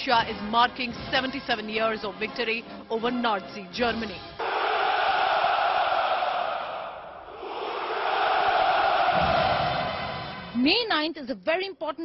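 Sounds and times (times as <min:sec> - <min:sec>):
soldiers shouting a cheer: 0:04.4 - 0:10.4.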